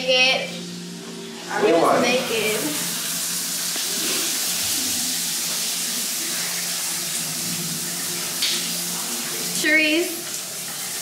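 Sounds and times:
water running: 0:00.0 - 0:11.0.

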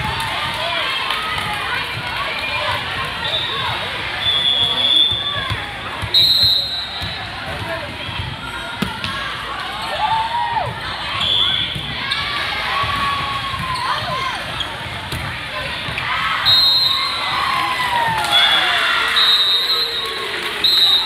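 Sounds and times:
volleyball ball contacts: 0:00.0 - 0:19.6
crowd chatter: 0:00.0 - 0:21.0
players shouting calls: 0:15.5 - 0:21.0.

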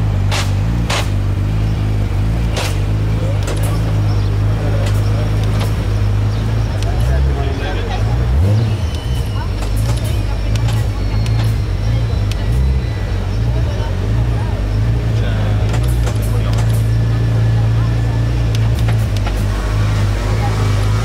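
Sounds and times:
car engine idling: 0:00.0 - 0:21.0
short clicks: 0:08.6 - 0:12.6, 0:15.6 - 0:17.1.

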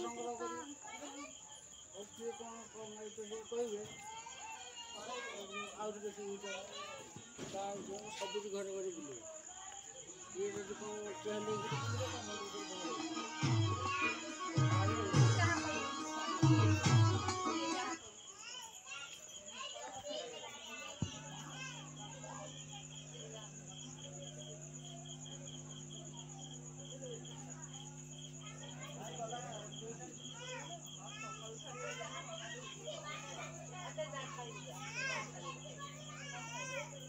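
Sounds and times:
children chattering and calling: 0:00.0 - 0:37.0.

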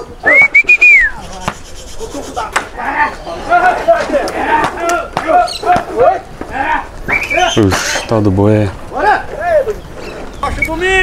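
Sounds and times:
human herding whistle: 0:00.0 - 0:02.6, 0:07.0 - 0:08.1.

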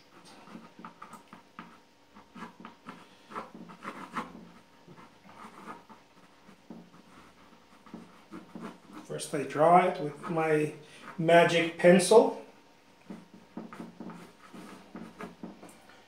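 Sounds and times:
pencil scratching on panel: 0:00.0 - 0:11.8, 0:13.0 - 0:15.7.

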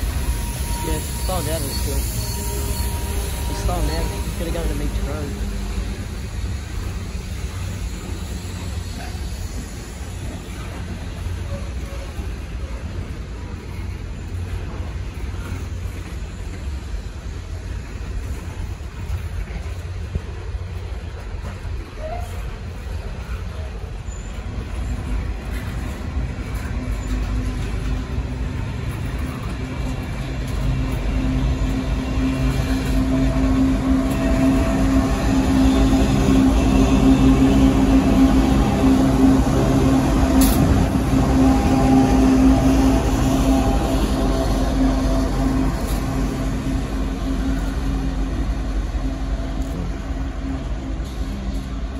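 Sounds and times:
train rumbling: 0:00.0 - 0:51.9.

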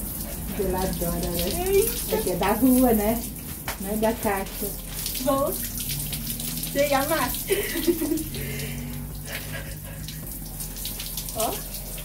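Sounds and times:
shower water splashing: 0:00.0 - 0:12.0.

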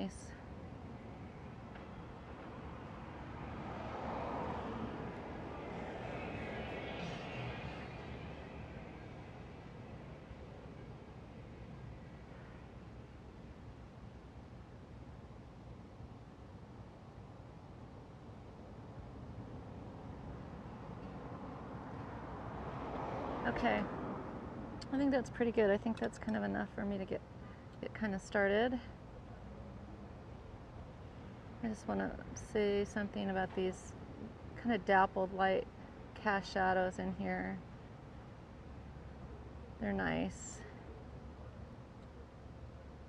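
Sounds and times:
low traffic rumble: 0:00.0 - 0:43.0
vehicle passing: 0:01.6 - 0:11.7, 0:19.1 - 0:27.1.

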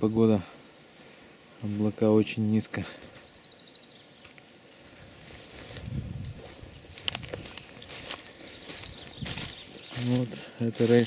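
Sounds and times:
small birds chirping: 0:00.0 - 0:11.0
footsteps through dry grass: 0:04.2 - 0:11.0.

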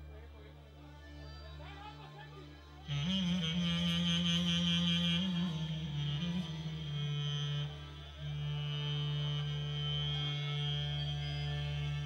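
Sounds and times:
low accordion chords: 0:00.0 - 0:12.0
clarinet ornamented melody: 0:02.8 - 0:12.0.

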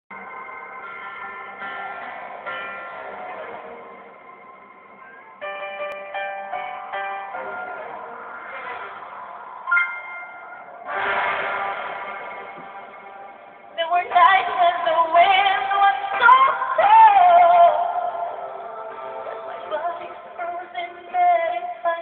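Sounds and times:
ringing keyboard chords: 0:00.1 - 0:11.0.

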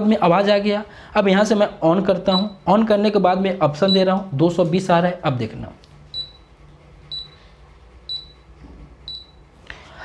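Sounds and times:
induction cooker beeps: 0:02.3 - 0:02.7, 0:03.8 - 0:04.1, 0:06.1 - 0:06.5, 0:07.1 - 0:07.4, 0:08.1 - 0:09.4.

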